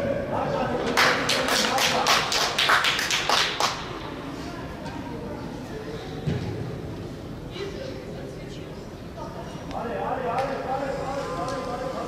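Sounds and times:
people clapping: 0.8s - 4.0s.

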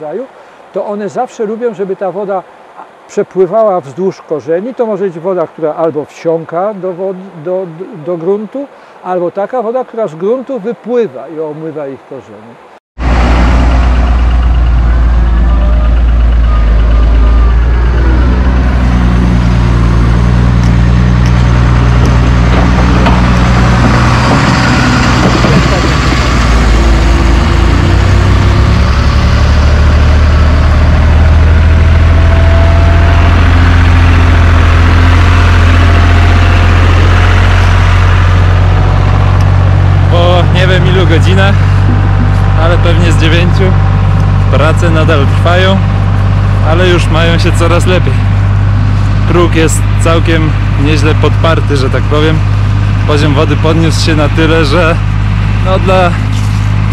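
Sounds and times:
construction machinery diesel engines: 12.6s - 56.9s.

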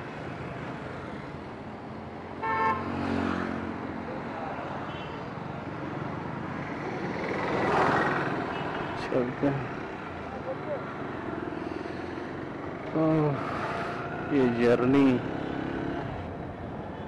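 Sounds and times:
street traffic: 0.0s - 17.0s
vehicle horn honking: 2.4s - 2.8s.

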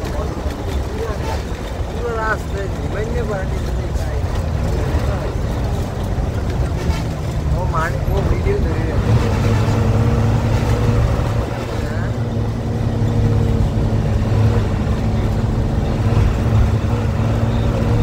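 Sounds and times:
coach engine and road drone: 0.0s - 18.0s.

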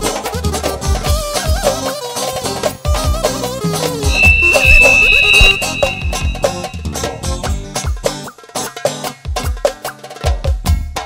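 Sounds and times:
long held high note: 4.1s - 7.2s.

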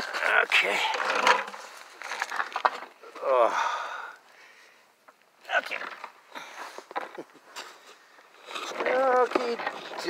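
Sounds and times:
scuffs creaks and knocks: 5.7s - 10.0s.

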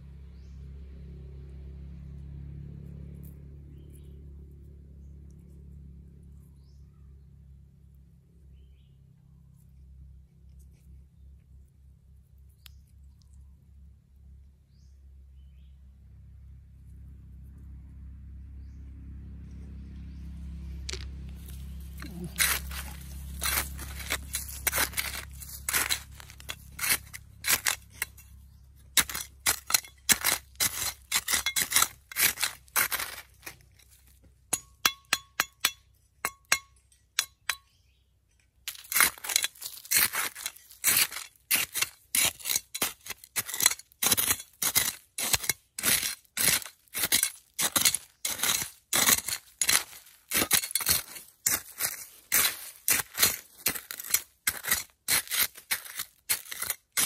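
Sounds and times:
trowel digging into stony soil: 20.8s - 37.7s, 38.6s - 57.0s.

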